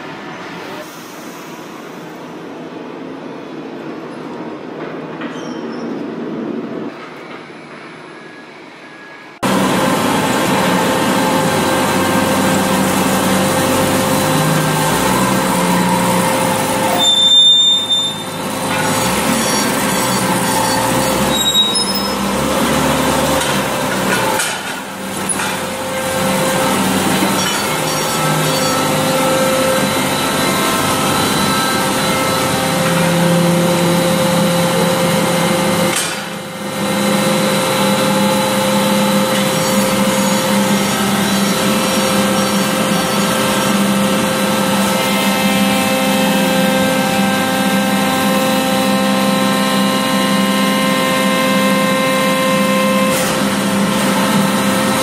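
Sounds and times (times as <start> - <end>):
constant machine hums: 0.0 - 55.0
industrial machinery din: 6.2 - 55.0.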